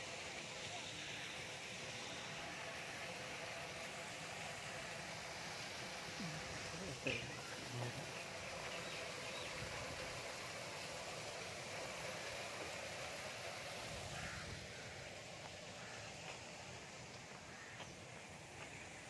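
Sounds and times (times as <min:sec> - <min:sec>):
outdoor background hiss: 0:00.0 - 0:19.0
faint bird calls: 0:14.0 - 0:19.0.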